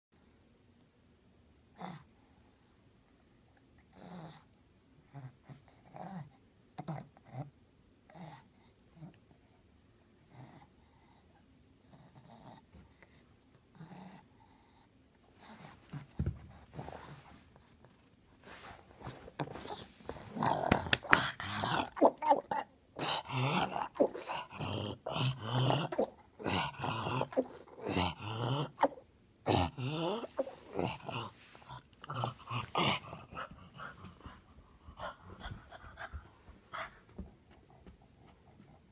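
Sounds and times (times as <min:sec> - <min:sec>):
dog grunting and snuffling: 0:18.4 - 0:37.2.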